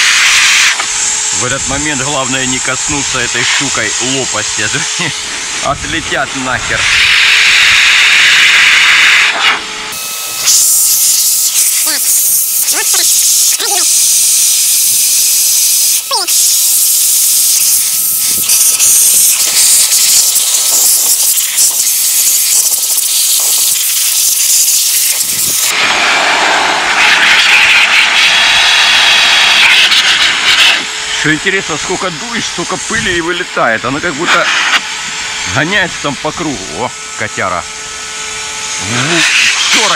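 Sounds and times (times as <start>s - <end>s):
air hissing through nozzle: 0.0s - 5.7s, 6.7s - 31.3s, 34.2s - 35.4s, 38.6s - 39.9s.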